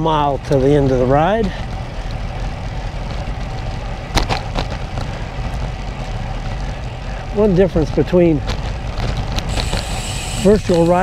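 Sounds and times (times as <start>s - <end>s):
bike tyres rolling on concrete: 0.0s - 11.0s.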